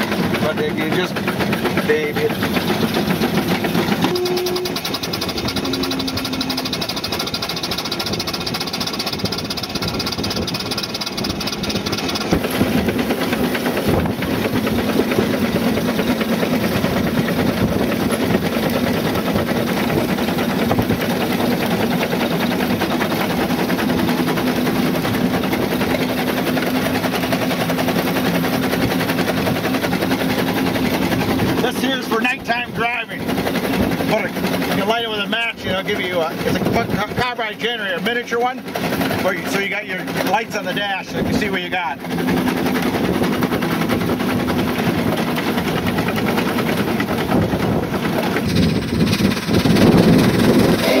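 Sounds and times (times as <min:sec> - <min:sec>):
road noise: 0:00.0 - 0:51.0
steam engine beats: 0:00.0 - 0:51.0.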